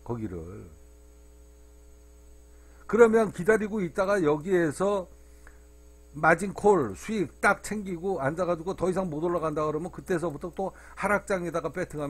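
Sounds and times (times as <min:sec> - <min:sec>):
man speaking: 0:00.0 - 0:00.8, 0:02.9 - 0:05.1, 0:06.2 - 0:12.0
electrical hum: 0:00.0 - 0:12.0
faint steady tones: 0:00.0 - 0:12.0.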